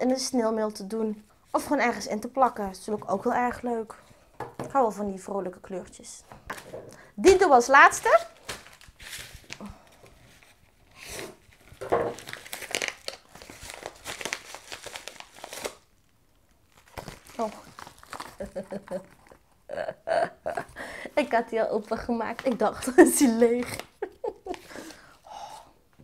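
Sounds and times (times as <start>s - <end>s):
envelope crinkling and tearing: 7.3s - 19.4s.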